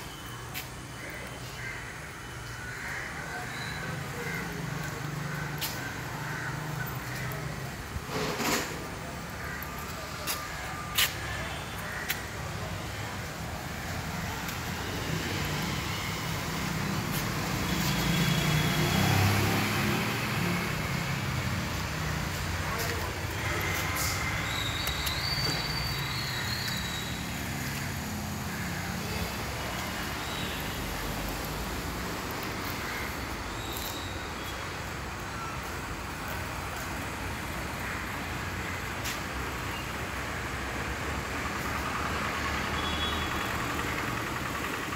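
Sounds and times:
traffic noise: 0:00.0 - 0:44.9
vehicle engine rumbling: 0:03.0 - 0:34.1, 0:40.4 - 0:44.9.

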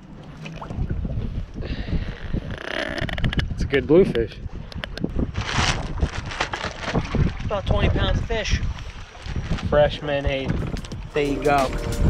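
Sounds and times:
wind buffeting microphone: 0:00.6 - 0:12.0.

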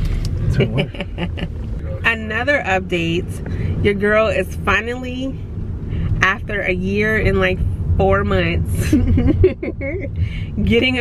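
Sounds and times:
car road and engine rumble: 0:00.0 - 0:11.0
voices: 0:00.4 - 0:05.4, 0:06.0 - 0:11.0.

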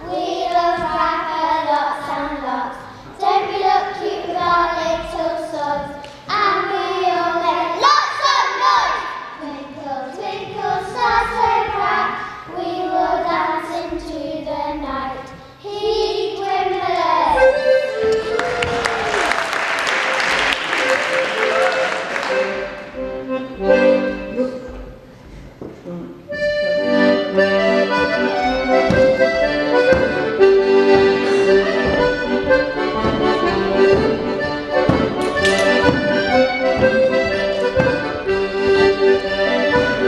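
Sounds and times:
piano accordion dance tune: 0:15.8 - 0:18.8, 0:19.8 - 0:25.0, 0:26.3 - 0:40.0.

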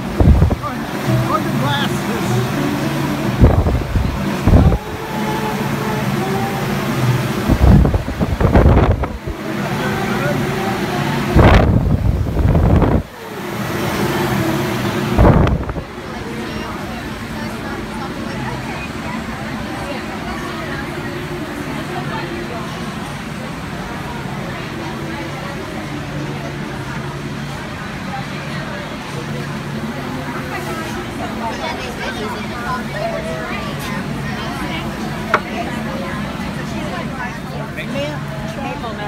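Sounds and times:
fan air buffeting microphone: 0:00.0 - 0:39.0
steady fan hum: 0:00.0 - 0:39.0.

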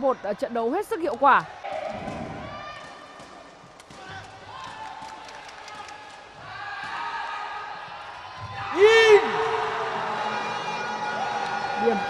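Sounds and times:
ball kicks ringing in hall: 0:01.6 - 0:04.1
players shouting: 0:06.4 - 0:12.0.

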